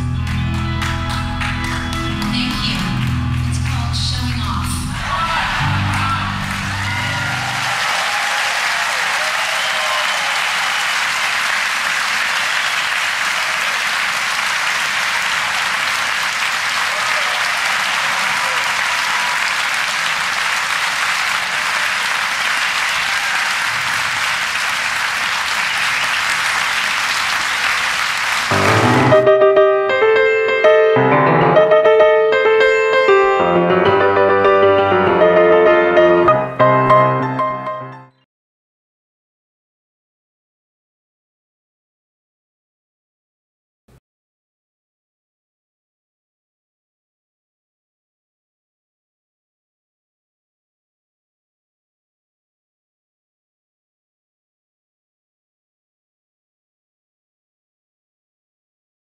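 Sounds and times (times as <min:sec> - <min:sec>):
audience applauding: 0:00.0 - 0:04.0, 0:04.9 - 0:31.1
live piano song with band: 0:28.5 - 0:38.2.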